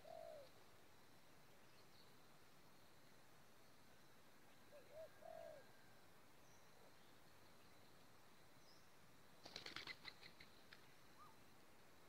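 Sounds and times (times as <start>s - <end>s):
dove cooing: 0.0s - 0.5s, 4.7s - 5.8s.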